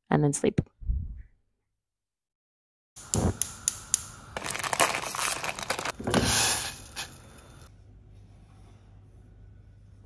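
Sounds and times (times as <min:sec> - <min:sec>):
plastic packet crinkling: 0:04.4 - 0:06.0.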